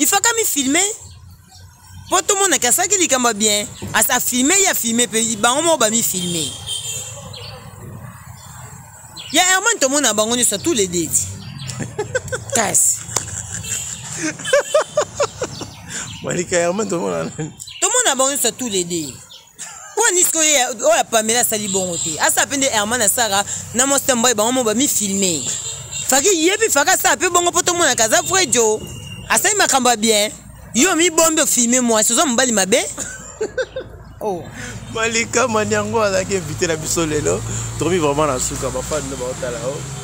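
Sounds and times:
outdoor background noise: 0.0 - 40.0
voices in conversation: 0.0 - 40.0.

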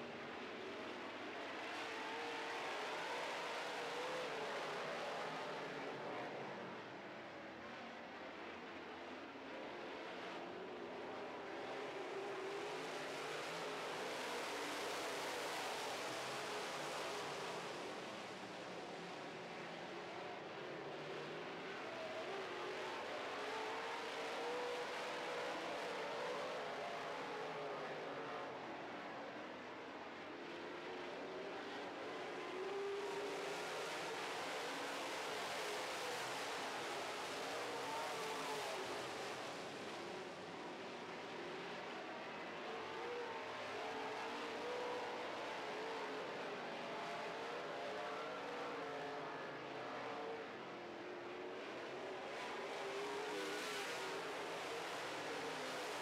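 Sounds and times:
race car engines at speed: 9.0 - 56.0.

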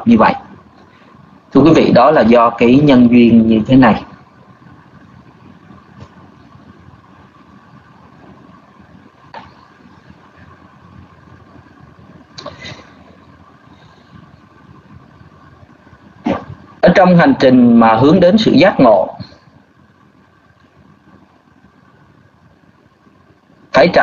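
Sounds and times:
microphone hum and hiss: 0.0 - 24.0.

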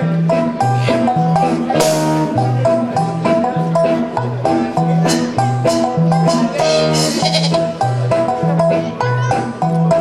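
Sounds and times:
drum kit: 0.0 - 10.0
repeating bass line: 1.2 - 8.8
brass band playing: 5.2 - 7.8.

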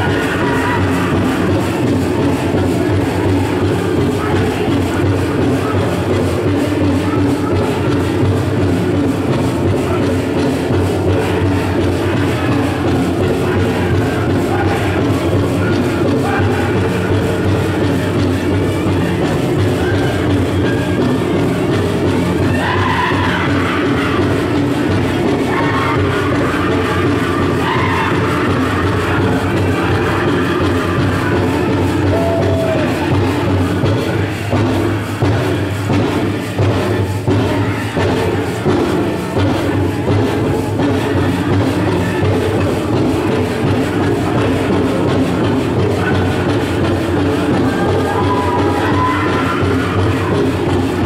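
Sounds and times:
drum group singing: 0.0 - 51.0
steady drumbeat: 0.0 - 51.0.

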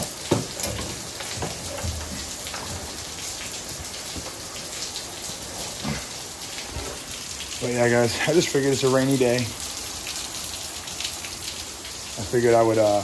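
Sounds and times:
heavy rain: 0.0 - 13.0.

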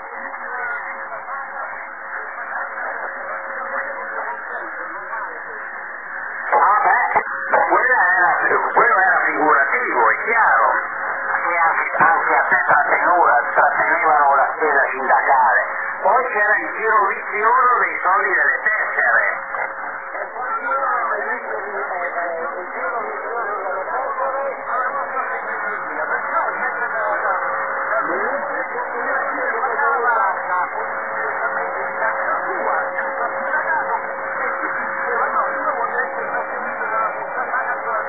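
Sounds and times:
noisy shortwave radio: 0.0 - 38.0
man's voice over radio: 6.4 - 38.0.

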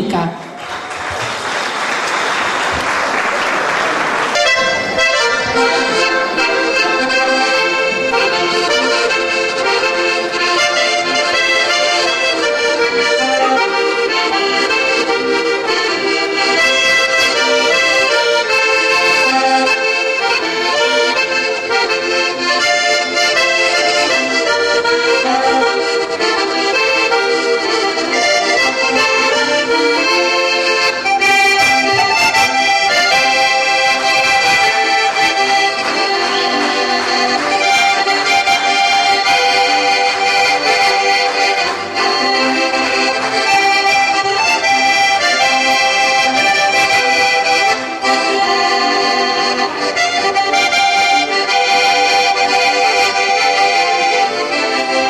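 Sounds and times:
accordion duet playing a polka: 0.0 - 55.0.

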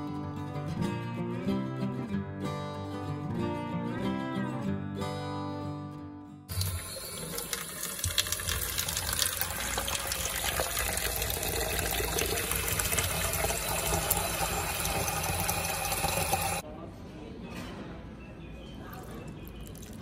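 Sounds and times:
tap water filling a plastic jug: 6.5 - 16.6.

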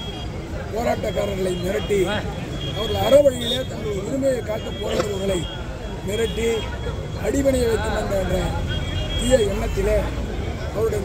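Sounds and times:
man speaking in a raised voice: 0.7 - 11.0.

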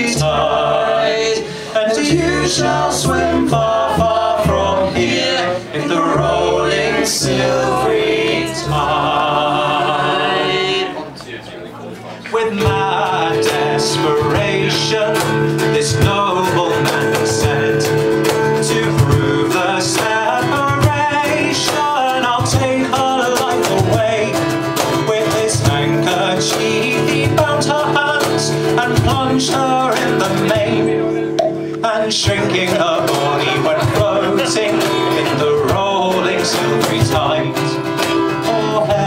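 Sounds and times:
cajon beat: 0.0 - 10.9, 12.3 - 39.0
acoustic guitar picking melody: 0.0 - 11.2, 12.0 - 39.0.

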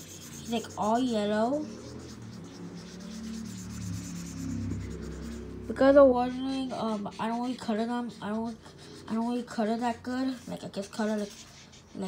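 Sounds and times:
felt-tip marker scratching: 0.0 - 12.0.

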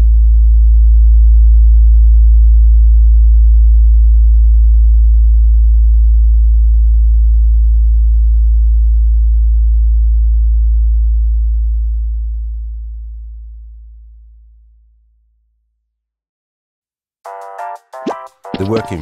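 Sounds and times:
deep electronic sine tone: 0.0 - 14.6.

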